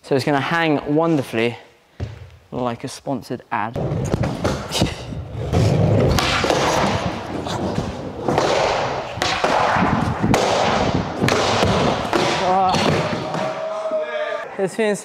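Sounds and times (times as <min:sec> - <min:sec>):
skateboard wheels rolling on wood: 0:05.2 - 0:12.2
skateboard clacks and thuds: 0:05.5 - 0:13.5.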